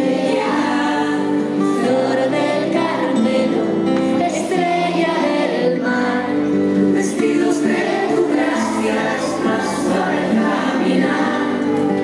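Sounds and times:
children singing a hymn: 0.0 - 12.0.

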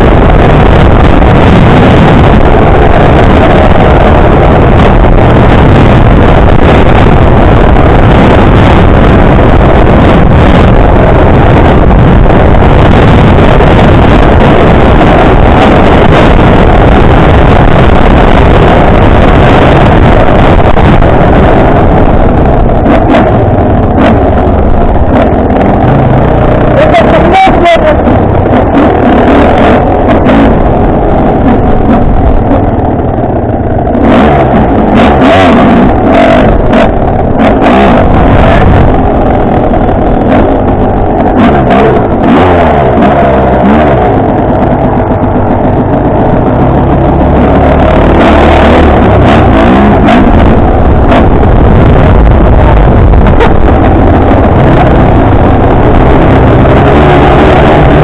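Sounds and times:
wind on the microphone: 0.0 - 58.0
dirt bike engine revving: 33.6 - 58.0.

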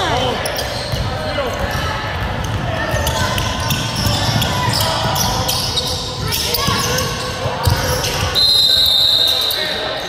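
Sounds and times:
referee whistle blast: 8.4 - 9.6.

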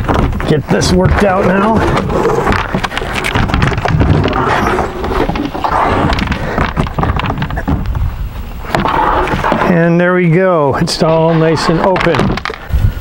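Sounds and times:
plastic tray knocking and scraping: 0.0 - 8.1, 11.0 - 12.6
wind buffeting microphone: 0.0 - 9.4, 12.6 - 13.0.

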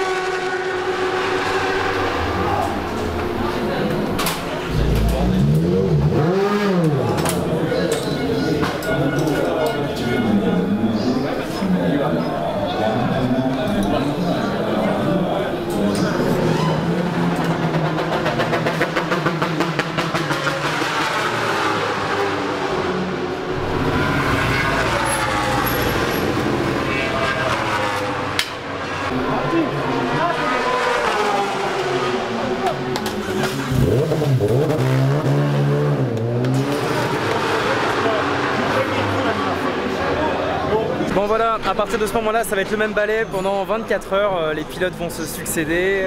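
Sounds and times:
racing motorcycles revving and passing: 0.0 - 11.6, 12.7 - 41.1.

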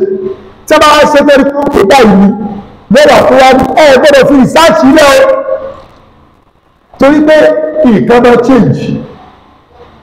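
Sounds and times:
man speaking: 0.0 - 5.8, 7.0 - 9.2.

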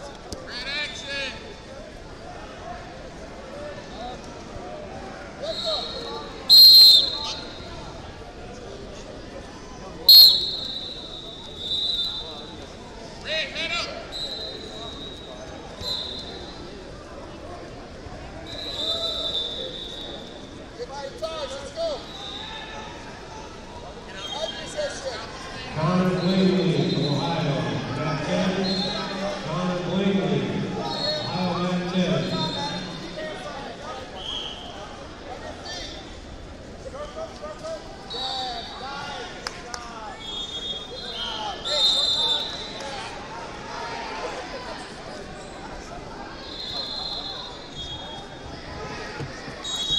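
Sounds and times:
referee whistles blowing: 5.4 - 7.7, 10.1 - 12.6, 14.1 - 16.6, 18.4 - 20.6, 22.0 - 22.5, 26.1 - 27.5, 28.4 - 29.5, 30.8 - 33.2, 34.1 - 34.9, 38.1 - 38.9, 40.2 - 42.8, 46.4 - 48.4, 49.6 - 49.9.

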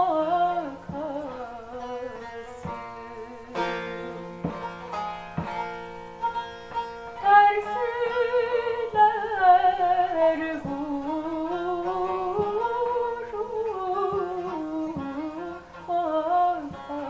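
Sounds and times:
plucked long-necked lute: 0.0 - 17.0
woman singing folk song: 0.0 - 17.0.

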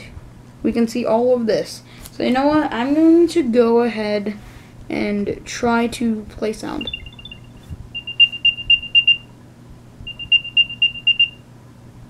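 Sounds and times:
high electronic chirps: 6.8 - 9.3, 10.1 - 11.4.

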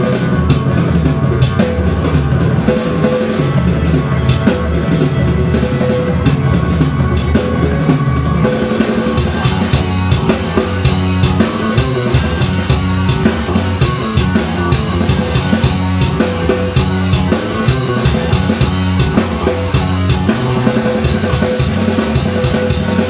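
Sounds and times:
drum kit beat: 0.0 - 23.0
low bass notes: 0.0 - 23.0.

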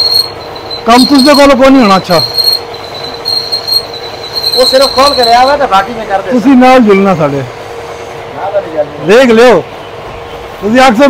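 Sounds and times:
high-pitched drill bit squeal: 0.0 - 5.9.

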